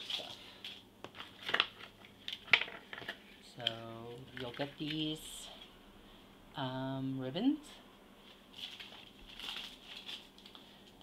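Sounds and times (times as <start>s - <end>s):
paper rustling: 8.5s - 10.9s.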